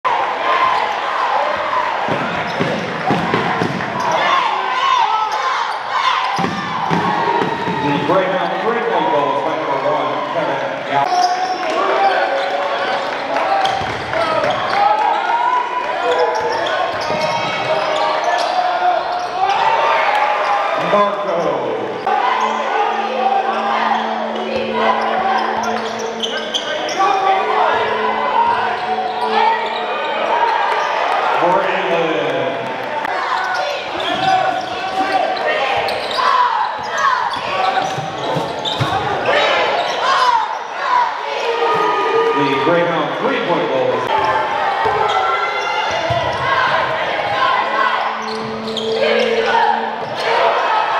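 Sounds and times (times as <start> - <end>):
echoing voices in a hall: 0.0 - 50.9.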